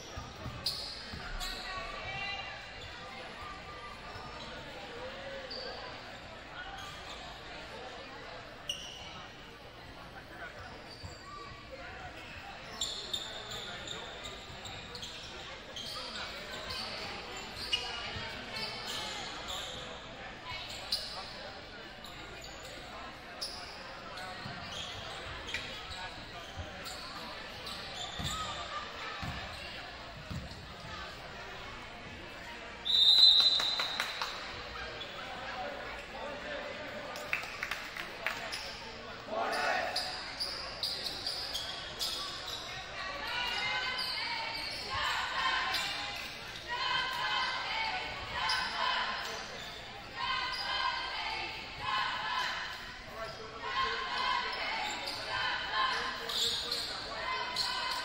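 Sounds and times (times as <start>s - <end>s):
sneaker squeaks on wooden floor: 0.0s - 3.0s, 8.6s - 9.1s, 10.6s - 11.7s, 12.7s - 20.0s, 23.4s - 31.2s, 39.8s - 42.9s
crowd chatter: 0.0s - 58.0s
basketball bouncing: 30.3s - 30.6s.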